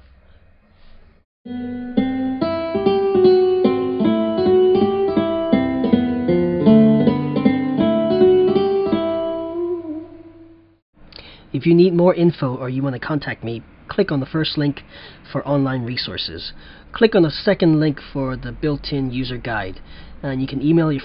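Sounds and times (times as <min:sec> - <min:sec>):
plucked string melody: 0:01.5 - 0:10.7.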